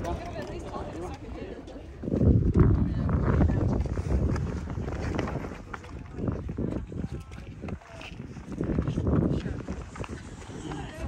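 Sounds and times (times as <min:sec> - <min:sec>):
faint voices: 0:00.0 - 0:11.0
wind rumbling on microphone: 0:00.0 - 0:11.0.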